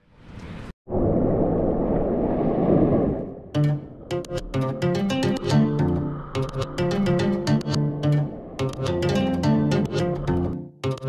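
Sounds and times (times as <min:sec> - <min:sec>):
plucked guitar background music: 0:03.6 - 0:11.0.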